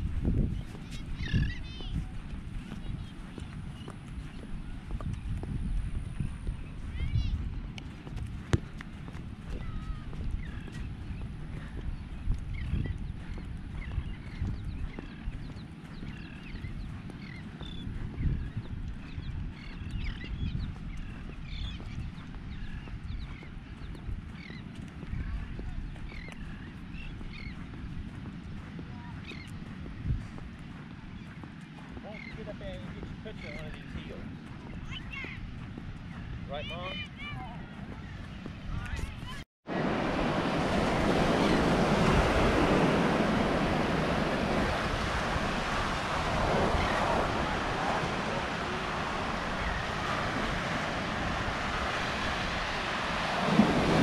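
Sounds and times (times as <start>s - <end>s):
footsteps crunching on sand: 0.0s - 54.0s
wind rumbling on microphone: 0.0s - 54.0s.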